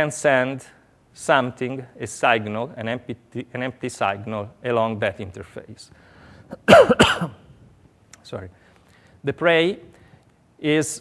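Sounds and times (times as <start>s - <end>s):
man coughing: 6.5s - 7.5s.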